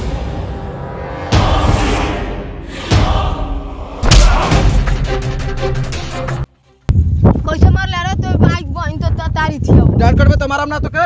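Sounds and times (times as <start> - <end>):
dramatic background music: 0.0 - 6.9
heavy thuds of a blow: 4.0 - 4.7.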